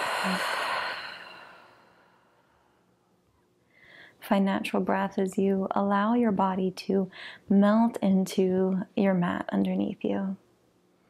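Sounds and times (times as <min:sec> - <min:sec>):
woman sighing: 0:00.0 - 0:02.0.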